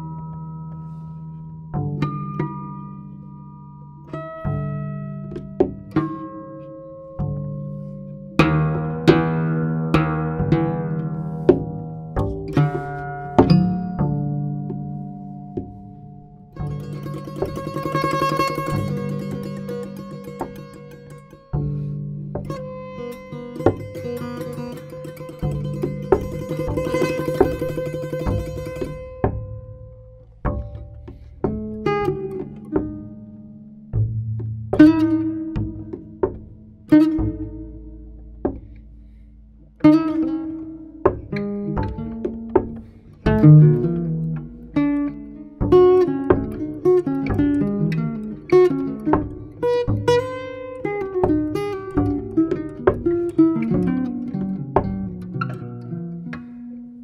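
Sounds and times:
double bass notes: 0.0 - 57.0
plucked guitar notes: 0.0 - 57.0.

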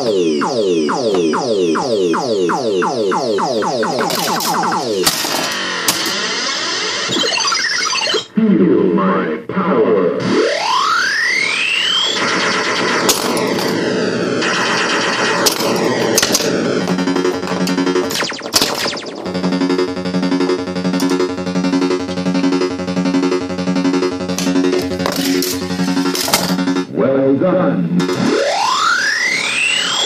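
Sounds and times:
pulsing electronic tone: 0.0 - 8.3, 10.2 - 26.9, 28.0 - 30.0
electronic game sounds: 0.0 - 8.4, 10.2 - 27.0, 28.0 - 30.0
pinball clicks and knocks: 4.0 - 6.2, 21.0 - 21.3, 24.3 - 26.8.

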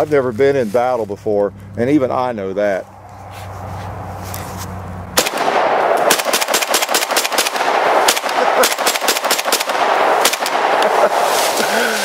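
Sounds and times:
rifle firing rapid shots: 5.2 - 11.3.

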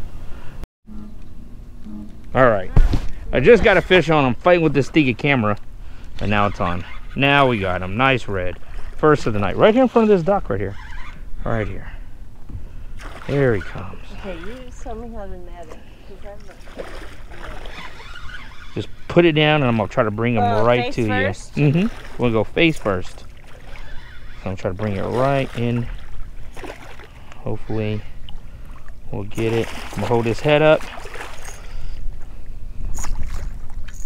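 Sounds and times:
fish splashing and thrashing in water: 12.9 - 13.8, 16.4 - 18.8, 21.7 - 27.4, 28.2 - 31.9, 32.9 - 34.0
fish splashing at water surface: 16.6 - 18.1, 25.4 - 27.3.

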